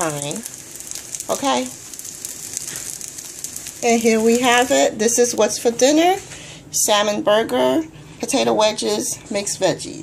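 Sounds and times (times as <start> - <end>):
oil sizzling and crackling: 0.0 - 6.5.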